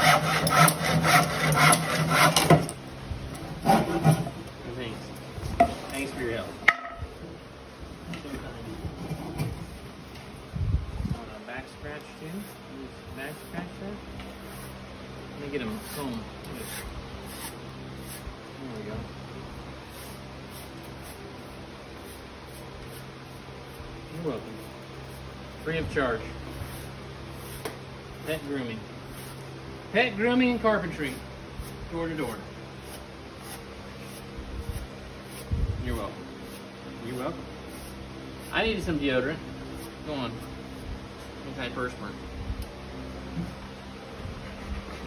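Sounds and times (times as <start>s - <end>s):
hand saw cutting wood: 0.0s - 2.8s, 3.4s - 4.5s, 15.6s - 18.3s, 26.6s - 29.4s, 30.9s - 38.7s
steady low hum: 0.0s - 45.0s
saw blade rustling through fur: 15.6s - 18.3s.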